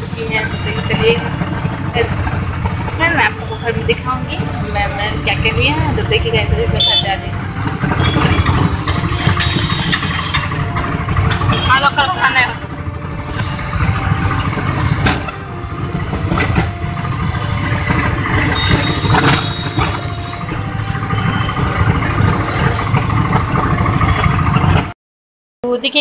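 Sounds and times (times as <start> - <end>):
low vehicle and road rumble: 0.0 - 25.0.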